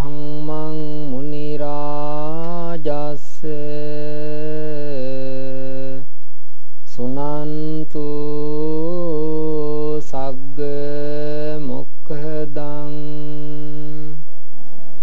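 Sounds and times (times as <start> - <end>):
man chanting: 0.0 - 6.1, 6.9 - 14.2.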